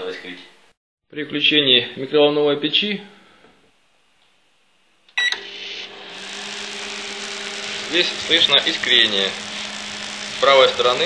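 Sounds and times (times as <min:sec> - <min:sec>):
microwave oven humming: 0:05.1 - 0:11.0
microwave button beep: 0:05.2 - 0:05.5
electrical arcing crackle: 0:05.6 - 0:11.0.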